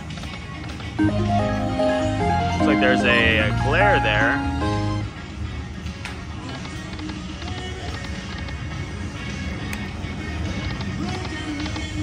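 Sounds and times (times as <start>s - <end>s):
casino machines din: 0.8s - 5.2s
slot machine tones and chimes: 1.0s - 5.2s.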